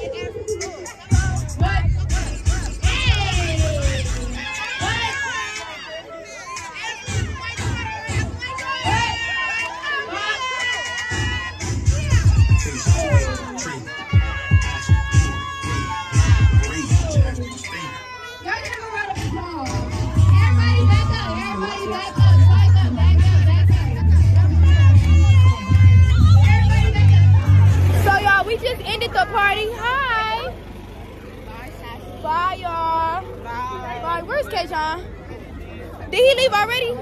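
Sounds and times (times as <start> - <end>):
hip hop dance music: 0.0 - 30.4
deep booming bass beats: 1.1 - 5.0, 11.1 - 13.4, 14.2 - 17.5, 19.2 - 28.2
girl shouting: 6.8 - 19.6.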